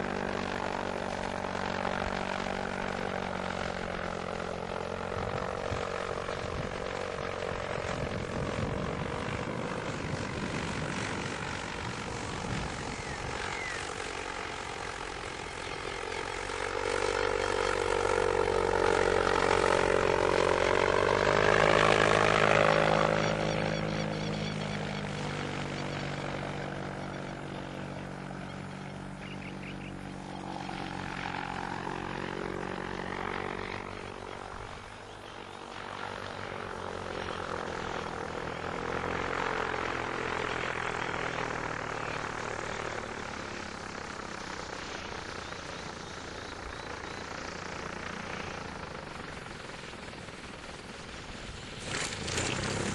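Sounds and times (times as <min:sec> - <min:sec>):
electric microlight motor humming overhead: 0:00.0 - 0:52.9.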